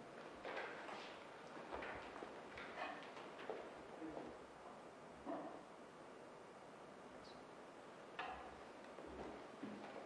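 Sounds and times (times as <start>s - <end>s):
faint knocks and shuffles: 8.9s - 10.0s.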